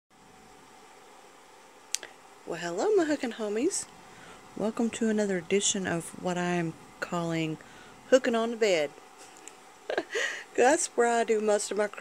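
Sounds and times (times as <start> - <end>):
faint room hiss: 0.2 - 12.0.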